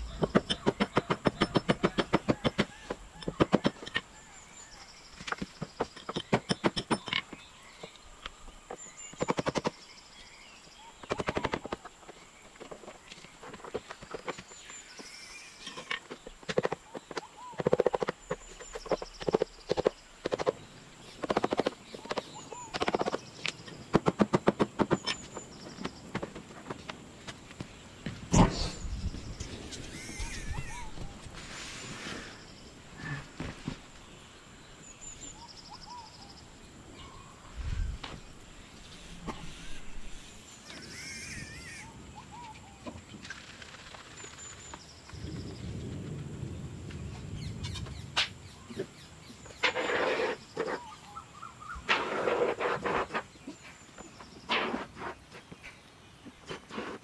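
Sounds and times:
bird chirps: 0.0s - 23.8s, 28.3s - 33.2s, 34.0s - 43.0s
songbird singing: 0.0s - 56.9s
hand tools tapping on wood: 0.1s - 4.1s, 5.2s - 8.0s
faint bird chirps: 28.3s - 33.4s.

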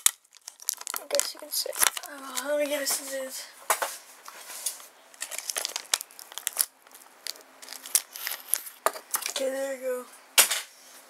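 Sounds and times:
plastic clicks and crackles: 0.0s - 3.1s, 4.6s - 9.5s
plastic card sleeves crinkling: 0.0s - 3.4s, 4.3s - 9.6s.

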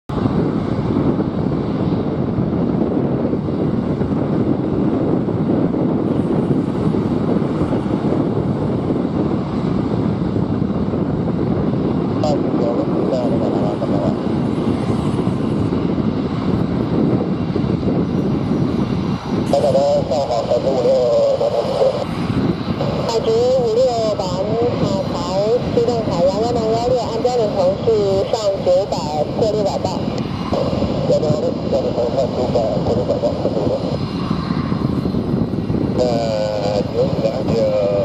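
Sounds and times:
jet engines rumbling: 0.1s - 38.0s.

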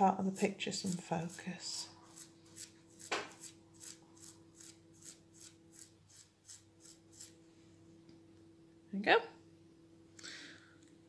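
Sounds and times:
thumb rasping toothbrush bristles: 0.3s - 7.3s.

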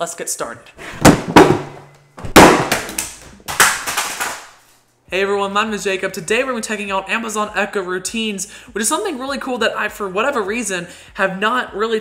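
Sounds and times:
speakers thudding on floor: 1.0s - 3.3s.

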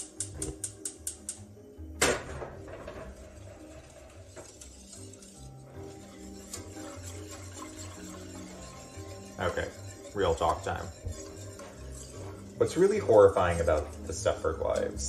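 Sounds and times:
gas stove igniter clicking: 0.0s - 2.2s
background music: 0.0s - 15.0s.

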